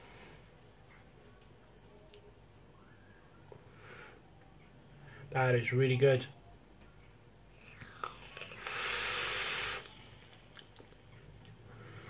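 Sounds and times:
vape hissing: 7.6s - 10.2s.

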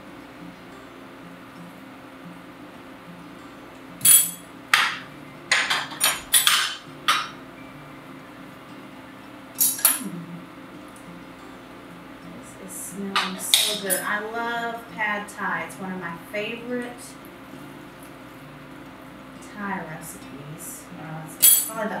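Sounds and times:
kitchen utensils knocking: 4.0s - 7.4s, 13.2s - 14.1s.

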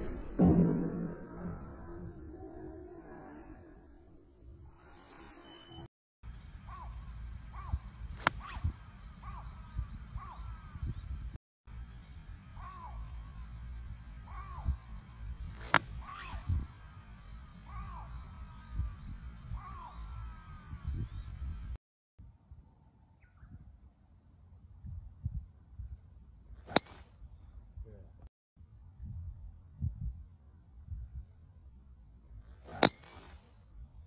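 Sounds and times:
low wind rumble: 0.0s - 5.2s, 6.2s - 32.6s
birds calling: 6.3s - 21.8s
golf club striking ball: 8.2s - 8.6s, 15.5s - 16.0s, 26.7s - 27.0s, 32.7s - 33.4s.

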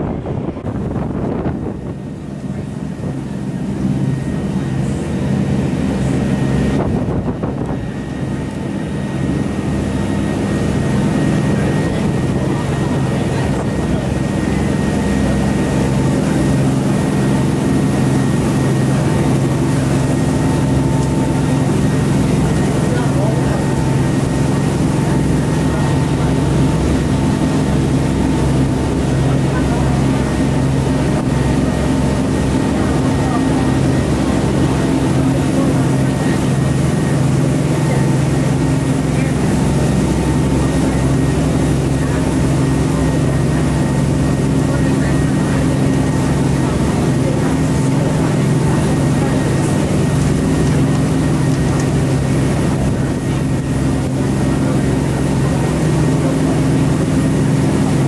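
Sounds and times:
boat engine droning: 0.0s - 58.0s.

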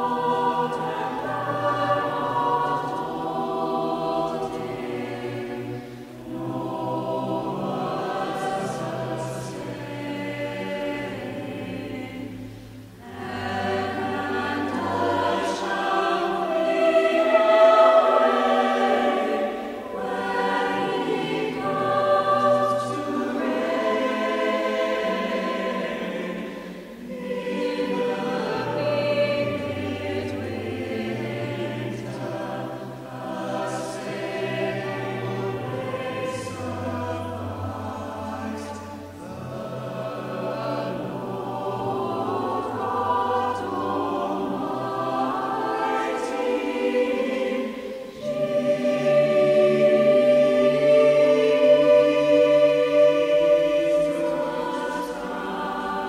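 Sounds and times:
mixed choir singing: 0.0s - 56.0s.

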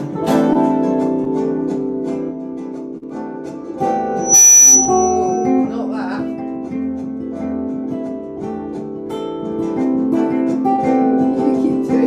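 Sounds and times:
electric guitar picked notes: 4.1s - 6.0s
thin high tone ringing: 4.2s - 5.9s.

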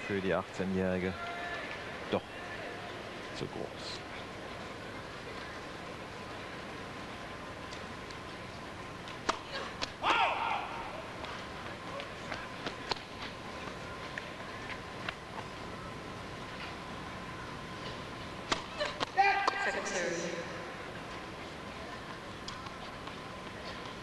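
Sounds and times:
crowd murmur: 1.0s - 24.0s
tennis balls bouncing: 7.6s - 10.4s, 11.0s - 15.5s, 17.8s - 19.9s, 20.9s - 24.0s
spectator shouting: 10.0s - 11.1s.

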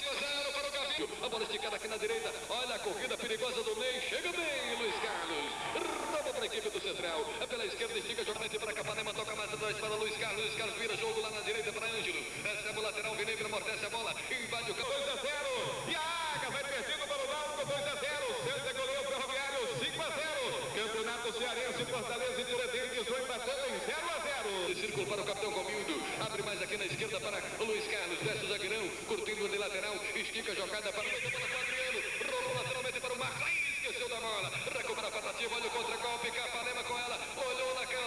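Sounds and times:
man giving sports commentary: 0.0s - 38.0s.

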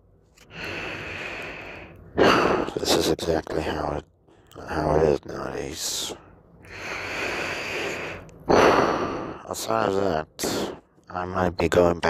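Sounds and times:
man breathing: 0.4s - 2.8s, 6.1s - 9.5s.

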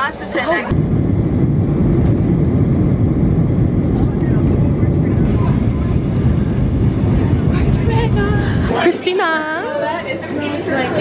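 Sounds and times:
airliner cabin roar: 0.0s - 11.0s.

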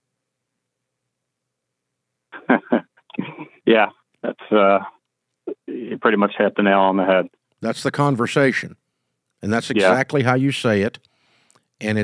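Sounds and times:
man speaking over telephone: 3.7s - 8.7s, 9.4s - 11.0s.

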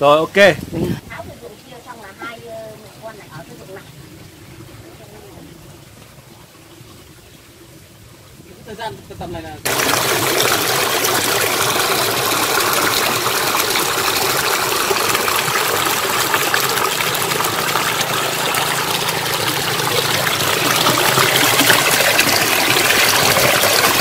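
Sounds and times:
water pouring into a channel: 9.6s - 24.0s.

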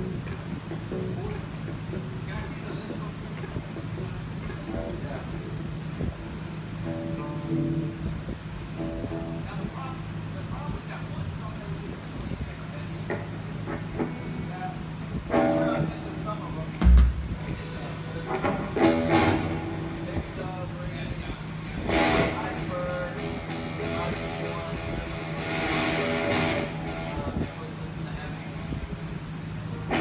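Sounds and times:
bass notes: 0.0s - 9.8s, 13.2s - 20.6s, 21.6s - 27.5s
electric guitar notes: 0.0s - 10.1s, 13.2s - 27.6s
amplifier hum: 0.0s - 30.0s
heavy low thump: 16.8s - 17.7s.

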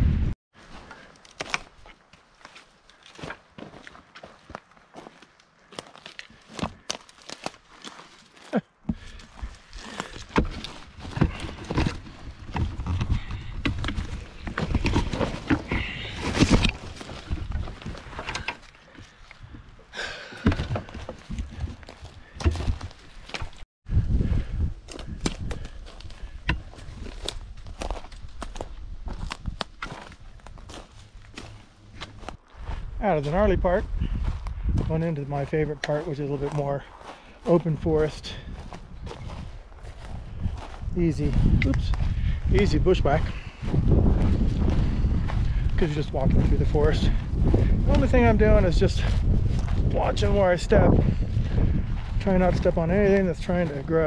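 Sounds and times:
wind buffeting microphone: 0.0s - 0.4s, 23.8s - 31.5s, 32.2s - 35.8s, 36.4s - 54.0s
footsteps crunching on sticks: 0.6s - 23.6s, 24.2s - 54.0s.

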